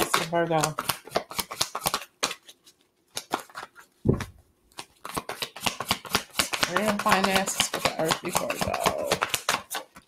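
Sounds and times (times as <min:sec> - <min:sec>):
cards shuffling: 0:00.0 - 0:10.0
dull thump: 0:04.1 - 0:04.4.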